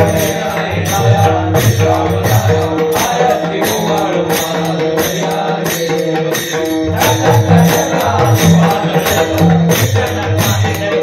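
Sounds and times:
men chanting in unison: 0:00.0 - 0:11.0.

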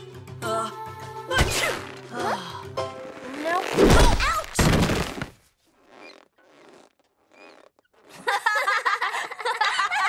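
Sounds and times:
faint creaking rubs: 0:05.4 - 0:08.1.

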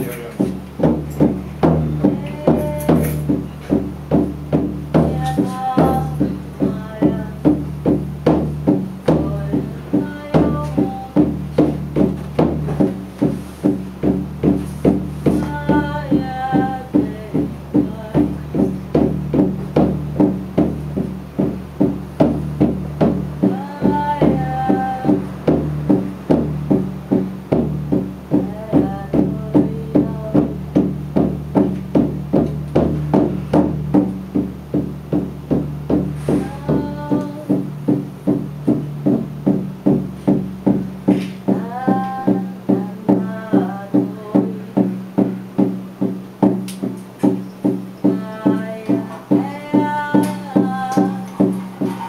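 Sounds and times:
frame drum beat: 0:00.0 - 0:52.0
woman singing: 0:01.9 - 0:12.5, 0:14.4 - 0:19.5, 0:23.0 - 0:26.8, 0:27.9 - 0:31.7, 0:36.2 - 0:39.6, 0:41.1 - 0:45.7, 0:47.2 - 0:52.0.

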